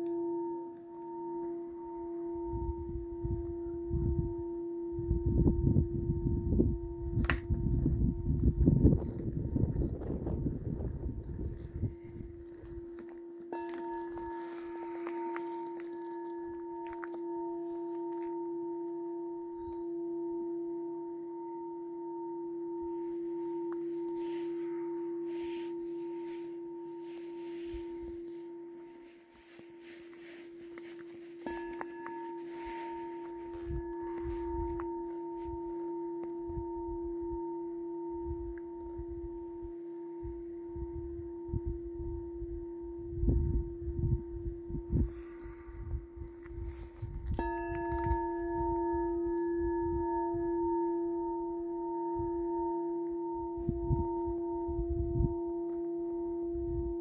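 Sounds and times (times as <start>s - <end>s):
singing bowl sustained tone: 0.0s - 57.0s
low rumbling noise: 1.7s - 17.7s.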